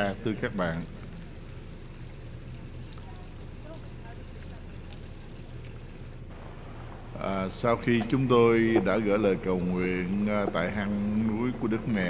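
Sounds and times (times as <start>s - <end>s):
water running into pool: 0.0s - 12.0s
faint high whine: 6.1s - 12.0s.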